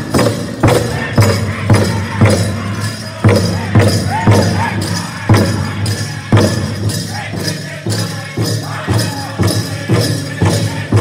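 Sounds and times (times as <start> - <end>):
ankle bells jingling: 0.0 - 11.0
big drum beats: 0.0 - 11.0.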